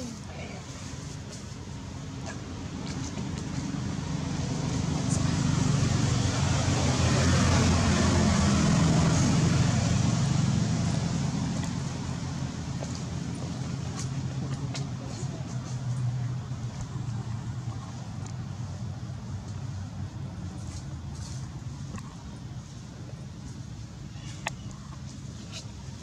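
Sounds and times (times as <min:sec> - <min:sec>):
road noise: 0:00.0 - 0:26.0
vehicle engine hum: 0:00.0 - 0:26.0.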